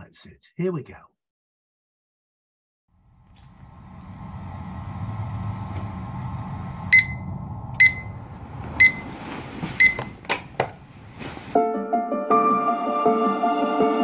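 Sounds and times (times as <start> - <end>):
low rumble: 3.2 - 9.0
alarm clock beeping: 6.8 - 8.2, 8.8 - 9.1, 9.8 - 10.1.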